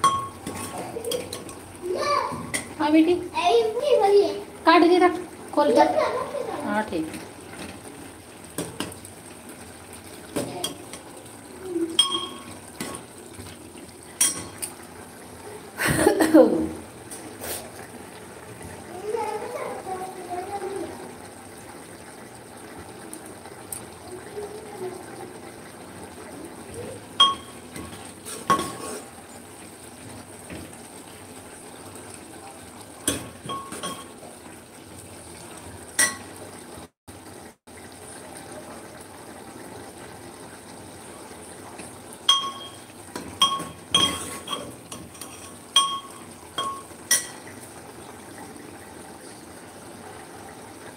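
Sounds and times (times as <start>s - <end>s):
steel spoon clinking metal pot: 0.0s - 1.4s, 12.0s - 13.1s, 14.2s - 14.7s, 42.3s - 47.4s.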